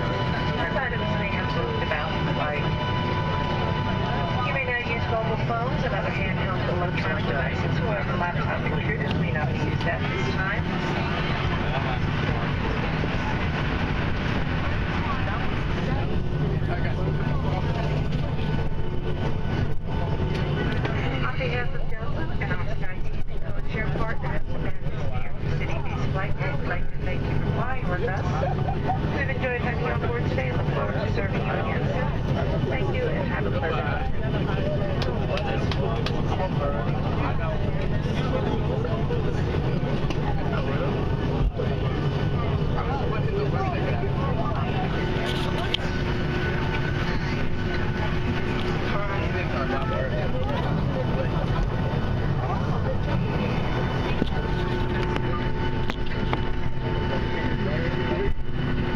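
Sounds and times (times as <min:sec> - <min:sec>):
airplane engines and airflow drone: 0:00.0 - 0:58.9
indistinct voices murmuring: 0:00.0 - 0:58.9.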